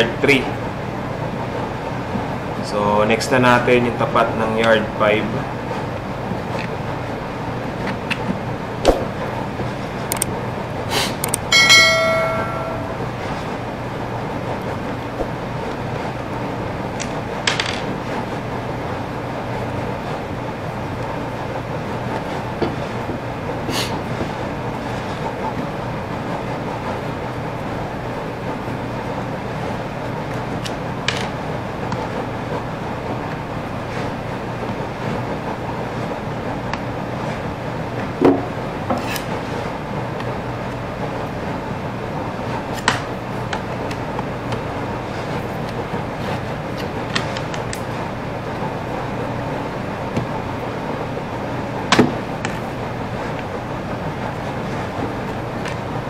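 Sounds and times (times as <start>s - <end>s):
room hum: 0.0s - 56.0s
short metallic ring: 11.5s - 13.2s.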